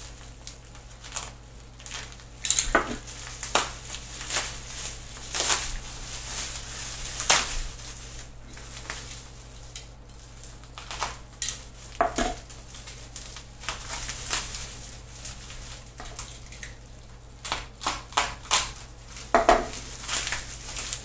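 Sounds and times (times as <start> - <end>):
bubble wrap crackling: 0.0 - 21.0
knife slicing packing tape: 17.4 - 18.8.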